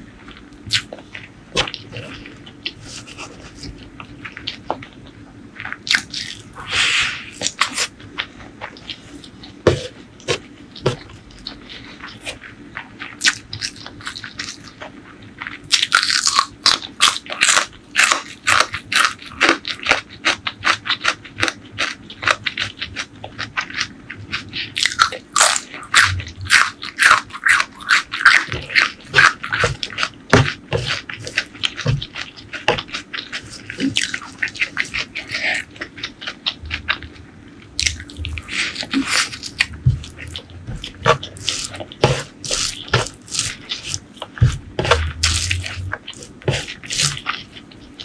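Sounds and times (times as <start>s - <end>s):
chewing crunchy food: 0.0s - 48.0s.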